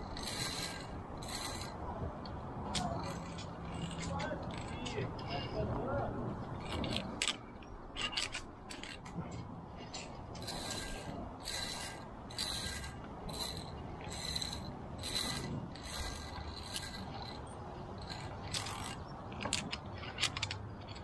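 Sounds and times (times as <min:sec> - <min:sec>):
pulley squeaking along steel cable: 0:00.0 - 0:09.2, 0:09.8 - 0:21.0
sharp metallic clicks: 0:09.9 - 0:21.0.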